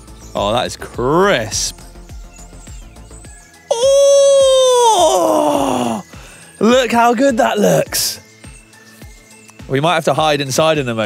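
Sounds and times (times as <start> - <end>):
quiet music with steady beat: 1.7 - 11.0
man's high wordless ooh: 3.7 - 6.1.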